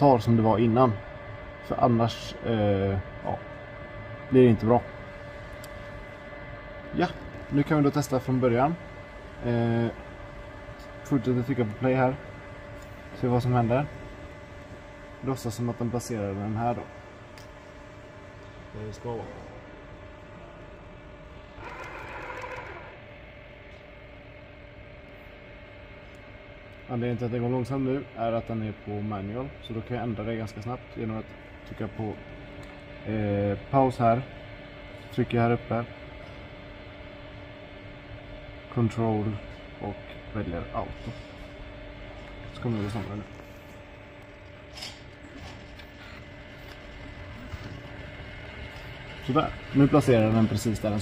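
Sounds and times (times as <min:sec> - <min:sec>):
thin steady tones: 0:00.0 - 0:36.4, 0:38.2 - 0:51.0
robot arm motors humming: 0:00.0 - 0:51.0
robot motor whirring: 0:21.6 - 0:23.0.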